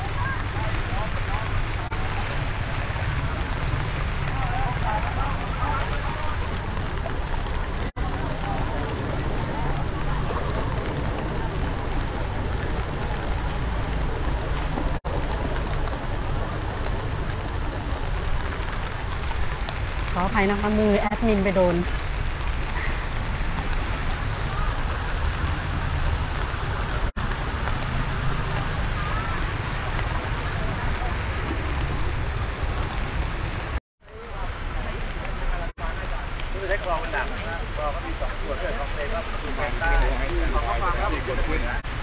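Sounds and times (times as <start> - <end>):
low rumble: 0.0 - 33.8
steady rain: 0.0 - 42.0.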